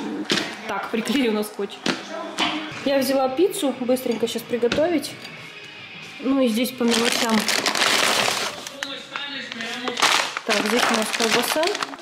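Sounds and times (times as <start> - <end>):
paper bag crinkling: 6.8 - 12.0
shopping bag rustling: 6.8 - 12.0.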